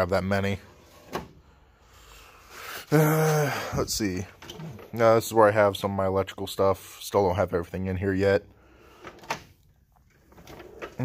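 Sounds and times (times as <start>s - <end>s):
drawer sliding open: 0.7s - 1.4s, 10.2s - 11.0s.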